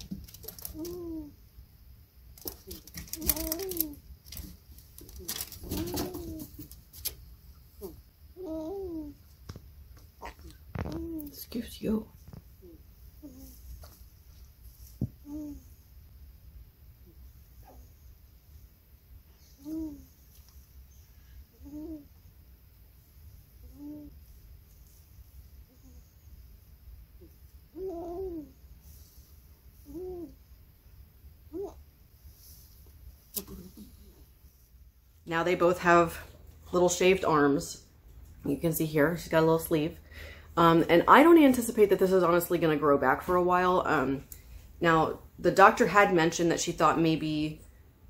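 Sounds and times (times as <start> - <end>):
soft clicks and handling rustles: 0.0 - 1.2, 2.4 - 7.4.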